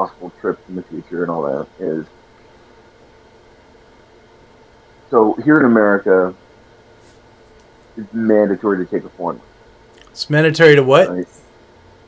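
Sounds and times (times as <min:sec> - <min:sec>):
faint microphone hiss: 0:00.0 - 0:11.7.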